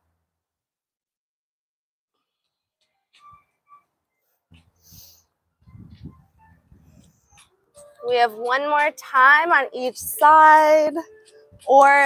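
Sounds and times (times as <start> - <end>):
breathy exhale: 4.8 - 5.3
faint breathing: 4.8 - 5.4.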